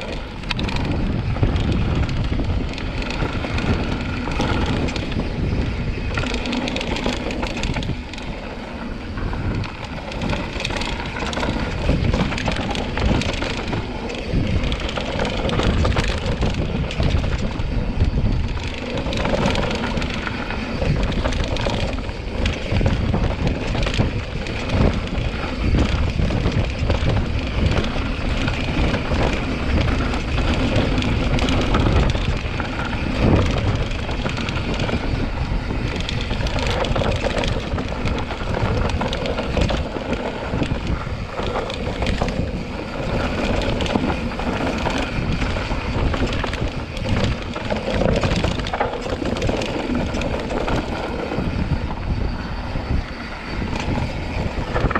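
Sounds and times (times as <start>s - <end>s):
bike rattling and knocking: 0.0s - 54.9s
bike tyres crunching over dirt: 0.0s - 54.9s
wind rumble on microphone: 0.0s - 54.9s.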